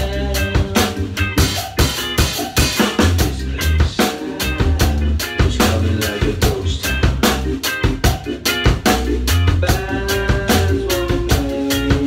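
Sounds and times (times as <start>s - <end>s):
drum kit played with sticks: 0.0s - 12.0s
ska backing track: 0.0s - 12.0s.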